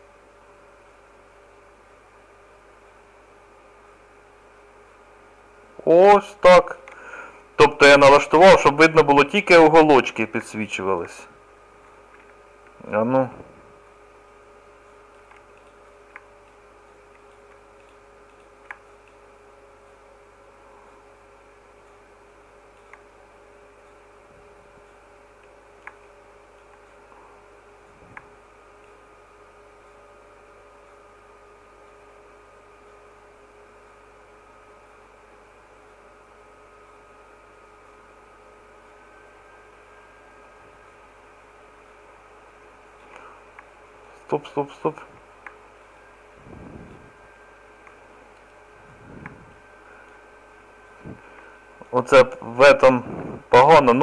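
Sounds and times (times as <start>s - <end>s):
faint electrical hum: 0.0s - 54.0s
computer mouse click: 14.8s - 19.2s, 22.7s - 23.1s.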